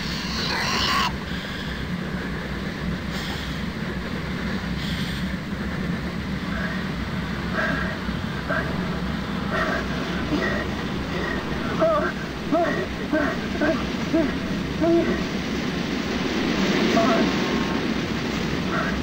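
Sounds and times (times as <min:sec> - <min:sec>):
low machinery hum: 0:00.0 - 0:19.0
short hisses: 0:04.8 - 0:05.3.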